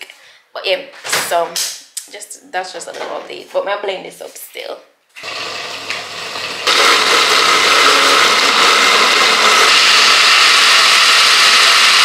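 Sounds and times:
blender whirring: 0:05.2 - 0:12.0.

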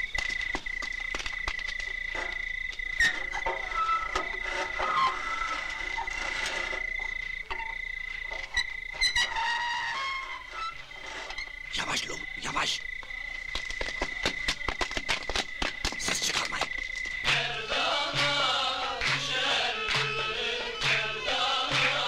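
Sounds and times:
night insects trilling: 0:00.0 - 0:22.0.

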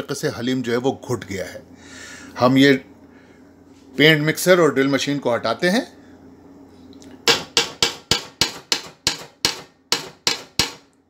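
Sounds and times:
metal paddle knocking on pot: 0:07.3 - 0:10.9.

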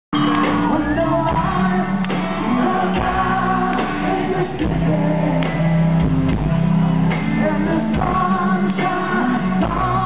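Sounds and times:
live rock band playing: 0:00.1 - 0:10.0
man singing amplified: 0:00.4 - 0:06.1, 0:07.2 - 0:10.0.

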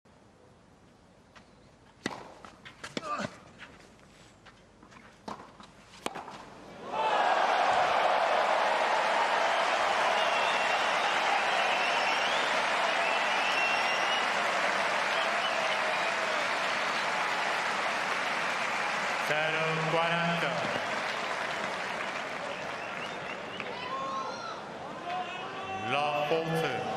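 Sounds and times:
crowd applauding and cheering: 0:06.8 - 0:23.9, 0:26.0 - 0:26.9.

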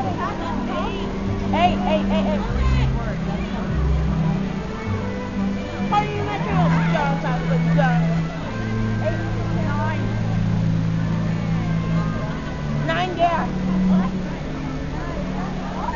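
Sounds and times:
crowd chattering and calling out: 0:00.0 - 0:15.9.

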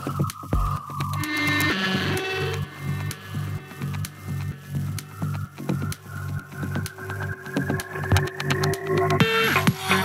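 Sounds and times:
techno music: 0:00.0 - 0:10.0.

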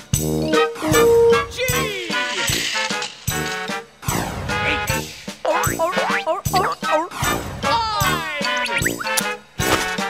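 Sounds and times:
cartoon music: 0:00.3 - 0:02.7, 0:04.6 - 0:09.3.

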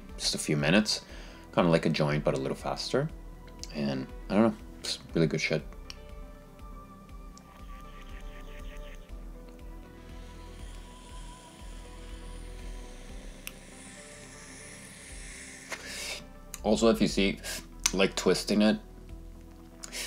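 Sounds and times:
soft background music: 0:00.0 - 0:20.0
vape pen airy hiss: 0:07.3 - 0:16.4, 0:19.8 - 0:20.0.

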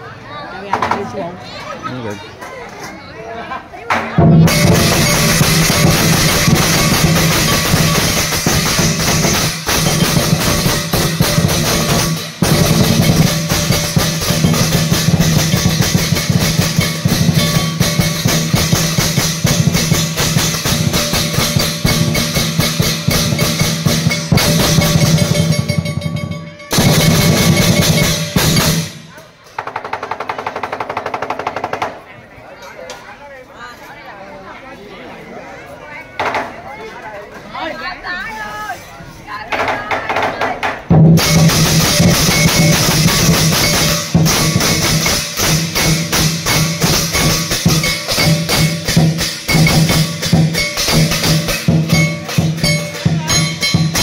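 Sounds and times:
big drum beaten in fast roll: 0:04.2 - 0:29.1, 0:39.6 - 0:54.0
crashing cymbals: 0:04.4 - 0:29.1, 0:41.2 - 0:54.0.

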